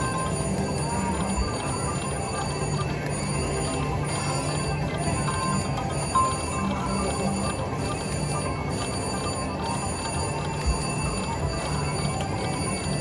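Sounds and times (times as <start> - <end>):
din of casino machines: 0.0 - 13.0
electronic chimes and ticking: 0.0 - 13.0
slot machine reels spinning: 0.0 - 13.0.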